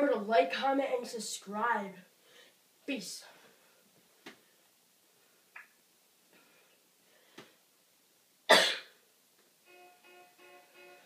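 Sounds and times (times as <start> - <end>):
loud sharp cough: 8.5 - 8.9
music with repeated pitched notes: 9.6 - 11.0.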